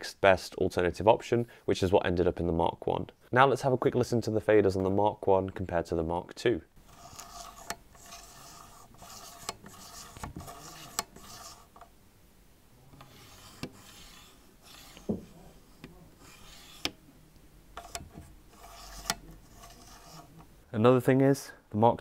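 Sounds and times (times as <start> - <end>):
faders sliding: 6.8 - 12.0, 12.8 - 20.7.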